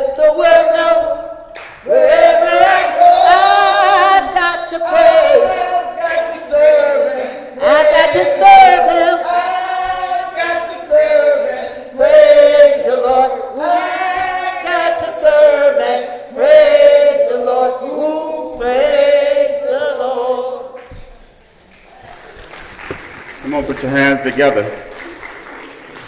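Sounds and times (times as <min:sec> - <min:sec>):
choir singing: 0:00.0 - 0:20.9.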